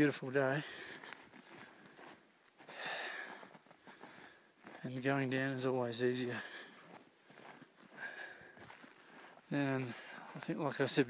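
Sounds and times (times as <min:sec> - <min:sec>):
faint footsteps: 0:00.0 - 0:10.6.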